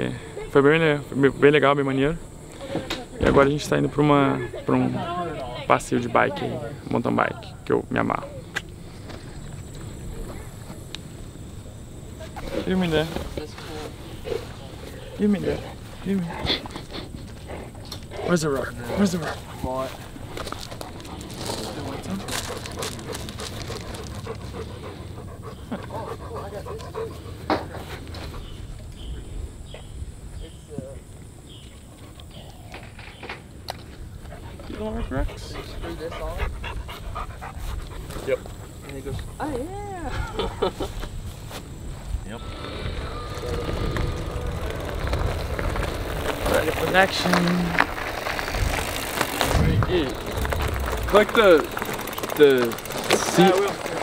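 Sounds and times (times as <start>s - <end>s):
large dog panting: 16.4s - 28.8s, 34.2s - 39.6s
bike tyres crunching over gravel: 18.5s - 24.2s, 43.0s - 54.0s
steady low rumble: 41.8s - 48.8s, 49.4s - 52.3s.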